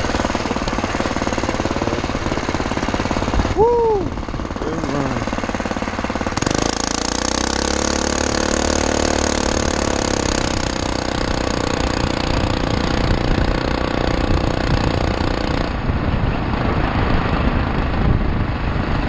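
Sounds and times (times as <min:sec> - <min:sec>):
small engine at high revs: 0:00.0 - 0:15.9.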